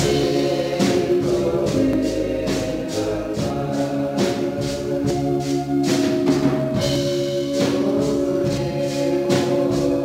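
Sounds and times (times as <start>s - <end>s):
instrumental backing: 0.0s - 10.0s
steady percussion beat: 0.0s - 10.0s
voices singing religious song: 0.0s - 10.0s.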